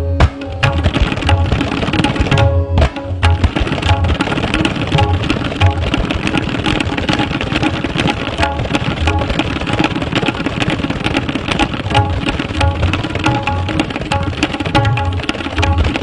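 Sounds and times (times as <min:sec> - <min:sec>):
tabla fast strokes: 0:00.0 - 0:16.0.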